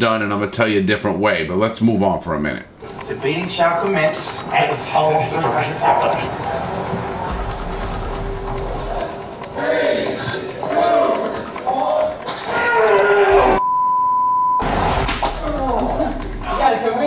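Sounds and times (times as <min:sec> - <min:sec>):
background music: 0:02.0 - 0:13.6, 0:14.6 - 0:17.0
men's voices: 0:02.9 - 0:13.6
censor bleep: 0:13.6 - 0:14.7.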